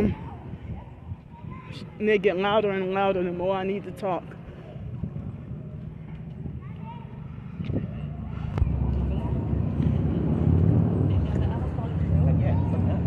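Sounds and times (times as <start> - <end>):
people talking in background: 0.0 - 13.0
low outdoor rumble: 4.2 - 13.0.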